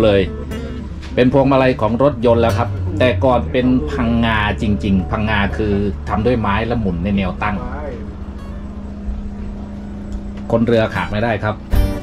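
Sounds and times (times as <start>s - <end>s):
boat engine hum: 0.0s - 12.0s.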